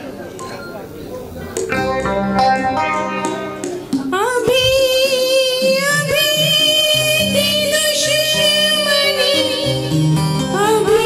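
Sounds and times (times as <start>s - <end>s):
woman singing into a microphone: 4.0s - 11.0s.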